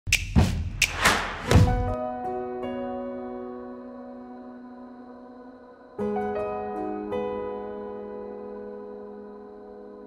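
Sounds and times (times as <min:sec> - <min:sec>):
sharp hits: 0:00.8 - 0:02.0
deep thumps: 0:01.2 - 0:02.0.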